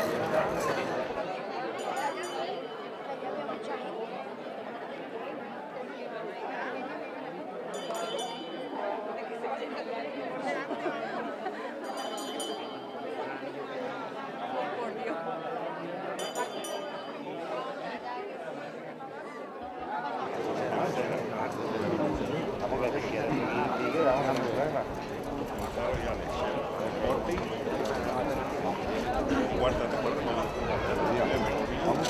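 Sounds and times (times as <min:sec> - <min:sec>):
murmur of crowd voices: 0:00.0 - 0:32.0.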